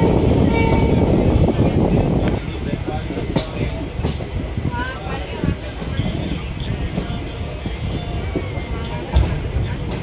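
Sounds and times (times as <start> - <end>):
train wheels rumbling on track: 0.0 - 10.0.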